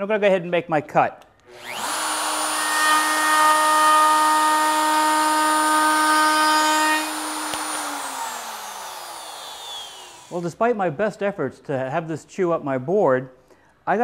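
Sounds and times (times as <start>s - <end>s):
router whining: 1.4s - 10.5s
motor spinning down: 1.5s - 10.4s.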